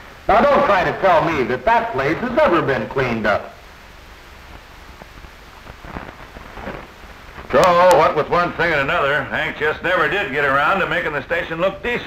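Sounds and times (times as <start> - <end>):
film soundtrack hiss and crackle: 0.0 - 12.0.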